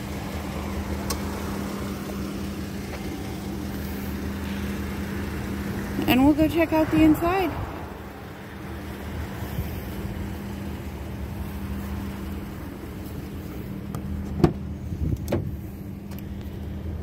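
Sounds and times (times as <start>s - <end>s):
car door latch clicks: 14.3s - 15.5s.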